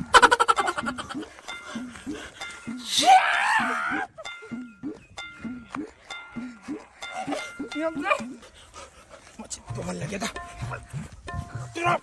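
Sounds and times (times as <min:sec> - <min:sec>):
men crying out and grunting: 0:00.0 - 0:04.8, 0:09.9 - 0:12.0.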